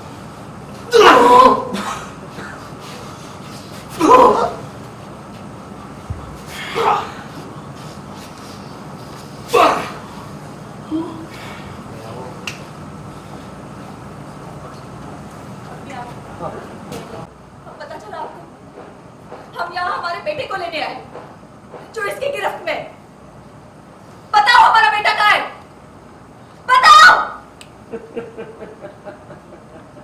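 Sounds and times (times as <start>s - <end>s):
room noise: 0.0s - 30.0s
person laughing: 27.9s - 30.0s.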